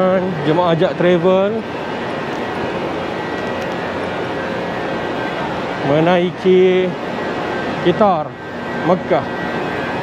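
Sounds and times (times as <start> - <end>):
faint high whine: 0.0 - 10.0
machinery and air-handling drone: 0.0 - 10.0.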